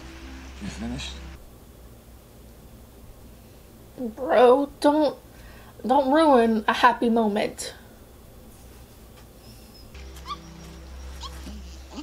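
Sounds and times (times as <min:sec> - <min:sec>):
low steady drone: 0:00.0 - 0:01.4, 0:10.0 - 0:12.0
ape squeaks: 0:09.6 - 0:12.0.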